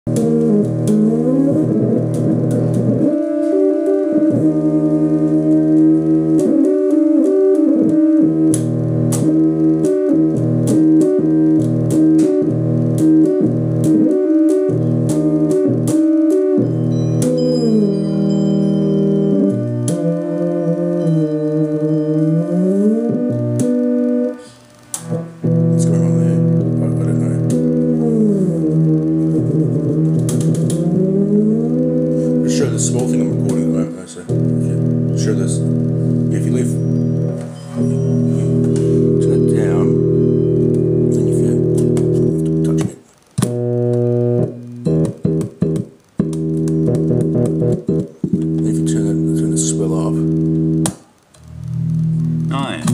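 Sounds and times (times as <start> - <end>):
buzzy synth notes sliding: 0.1 - 52.9
sharp clicks: 23.6 - 25.6, 26.6 - 31.2, 40.0 - 52.9.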